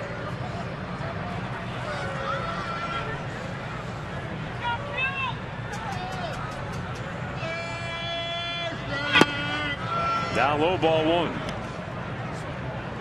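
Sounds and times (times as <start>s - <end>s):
crowd noise: 0.0s - 13.0s
fans shouting: 1.0s - 11.5s.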